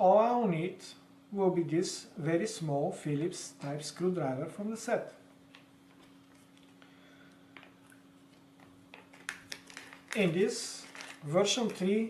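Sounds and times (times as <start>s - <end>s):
faint steady low hum: 0.0s - 12.0s
plastic bag crinkling and clicking: 7.5s - 12.0s.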